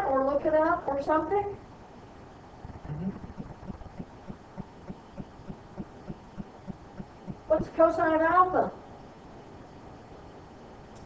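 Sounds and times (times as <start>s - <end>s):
faint room hum: 0.0s - 11.0s
soft low thuds: 2.6s - 7.8s.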